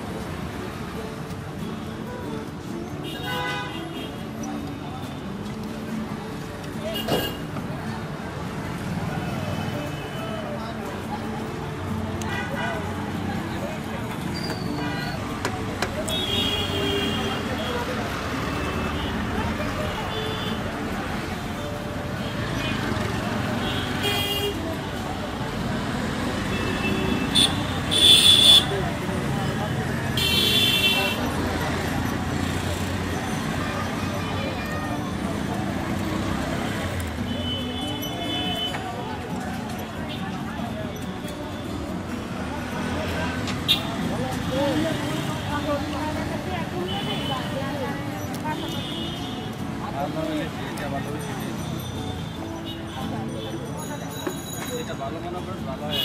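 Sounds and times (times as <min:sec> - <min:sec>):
traffic noise: 0:00.0 - 0:56.0
vehicle horns honking: 0:03.0 - 0:04.2, 0:26.5 - 0:28.8, 0:30.2 - 0:31.3
people's voices: 0:04.0 - 0:56.0
vehicle horn: 0:26.6 - 0:28.7.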